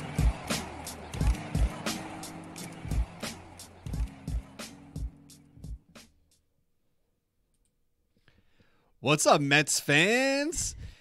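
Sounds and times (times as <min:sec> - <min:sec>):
intro music: 0:00.0 - 0:06.4.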